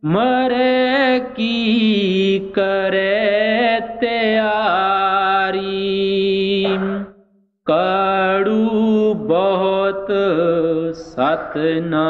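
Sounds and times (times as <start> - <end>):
person chanting a hymn: 0.0 - 7.1, 7.7 - 12.0.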